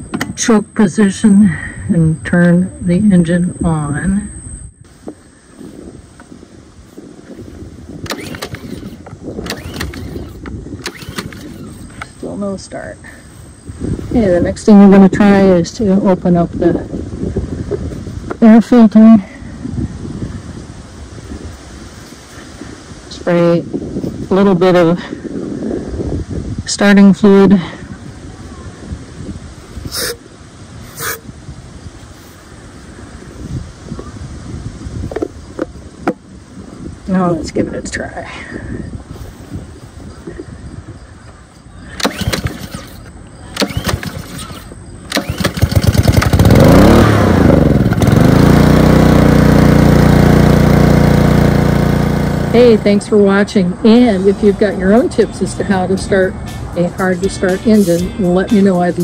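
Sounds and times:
small engine cranking: 8.0s - 12.1s, 41.9s - 52.9s.

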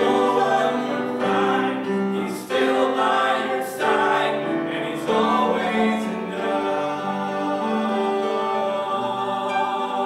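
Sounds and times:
piano accompaniment: 0.0s - 10.0s.

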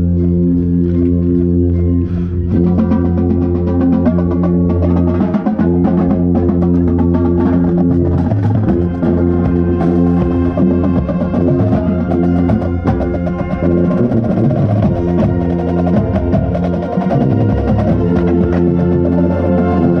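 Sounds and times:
brass and drumline playing: 0.0s - 20.0s
contrabass bugle low notes: 0.0s - 20.0s.

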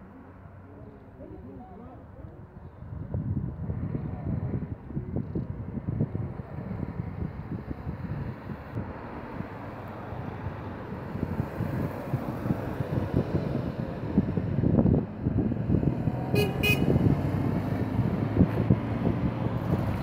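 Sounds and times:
wind buffeting microphone: 2.1s - 20.0s.

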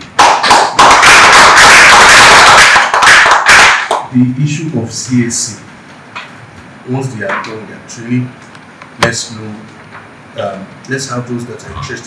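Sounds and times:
people applauding: 0.2s - 4.1s.

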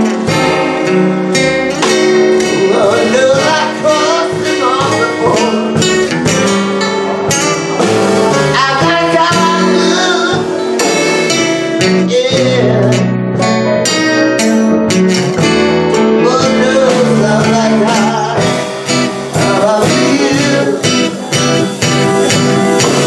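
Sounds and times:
acoustic guitar fingerpicked and strummed: 0.0s - 23.0s
grand piano accompaniment: 0.0s - 23.0s
man singing: 2.2s - 6.1s, 7.8s - 13.9s, 15.8s - 22.0s.

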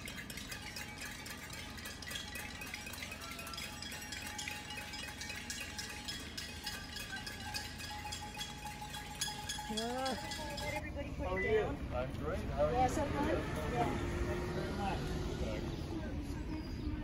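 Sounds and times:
chimes tinkling: 0.0s - 10.9s.

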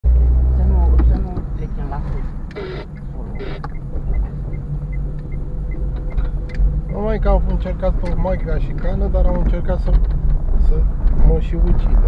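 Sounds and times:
car engine and road rumble: 0.0s - 12.0s
voices speaking: 0.5s - 5.1s, 6.9s - 12.0s
turn signal ticking: 0.8s - 11.2s.

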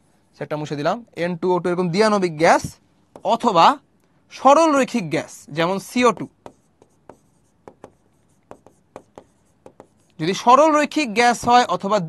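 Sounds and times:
pen writing on a board: 3.1s - 3.5s, 5.9s - 10.2s.

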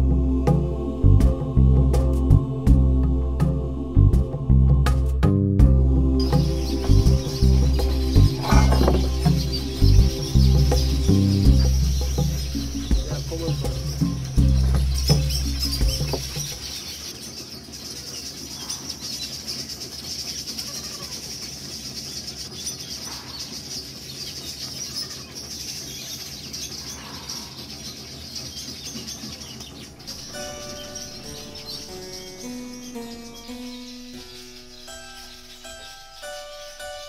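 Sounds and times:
low rumble: 0.0s - 16.7s
plucked-string music: 0.0s - 16.7s, 30.2s - 37.0s
birds chirping: 0.0s - 37.0s.

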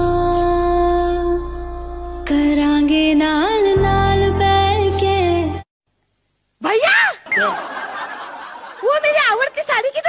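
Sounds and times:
high voice exclamation: 6.6s - 7.3s.

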